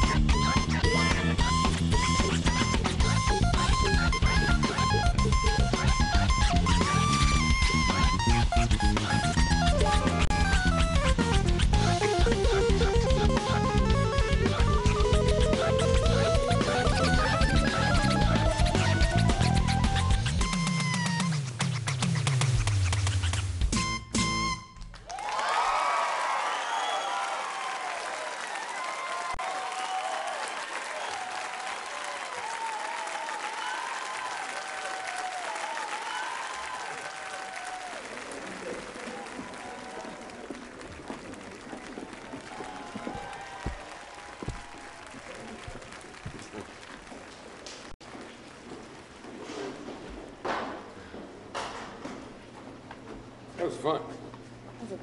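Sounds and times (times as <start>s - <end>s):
audience applauding and cheering: 0.0s - 23.1s, 24.9s - 48.6s.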